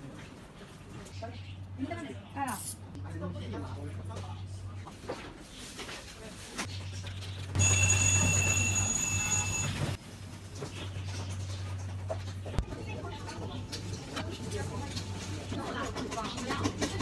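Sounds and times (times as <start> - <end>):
low electrical hum: 0.0 - 17.0
electronic alarm tone: 7.6 - 10.0.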